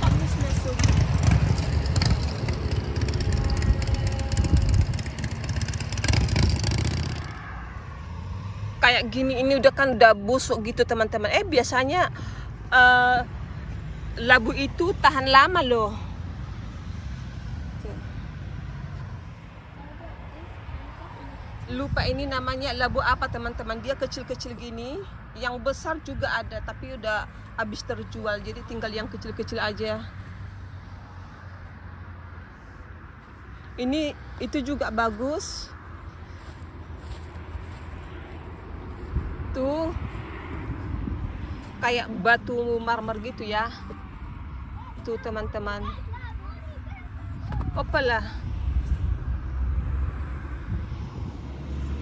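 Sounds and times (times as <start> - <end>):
wind buffeting microphone: 0.0 - 9.4, 20.2 - 23.9, 35.7 - 52.0
low outdoor rumble: 0.0 - 52.0.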